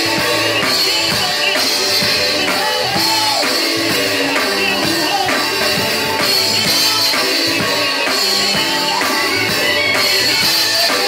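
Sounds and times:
drum kit beat: 0.0s - 11.0s
gospel music: 0.0s - 11.0s
woman singing into a microphone: 0.0s - 11.0s.

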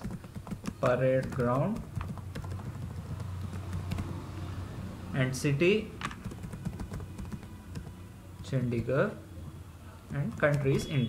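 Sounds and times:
keyboard key clicks: 10.4s - 10.8s.

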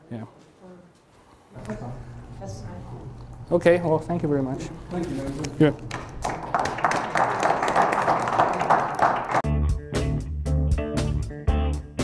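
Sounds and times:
audience applauding: 5.5s - 9.4s
guitar and bass music: 9.4s - 12.0s.

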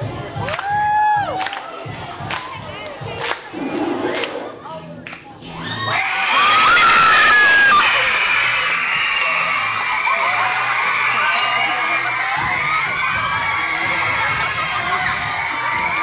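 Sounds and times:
children screaming and cheering: 5.5s - 16.0s.

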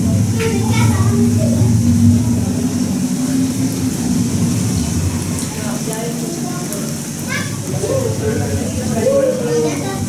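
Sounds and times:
deep low rumble: 0.0s - 10.0s.

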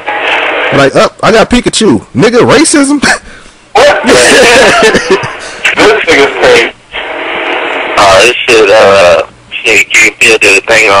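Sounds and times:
steady hiss: 0.0s - 11.0s
man laughing: 3.0s - 3.2s, 4.0s - 5.6s.

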